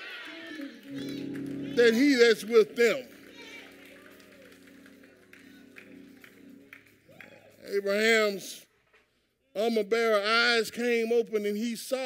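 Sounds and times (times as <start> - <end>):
soft sustained music chords: 0.8 - 7.7.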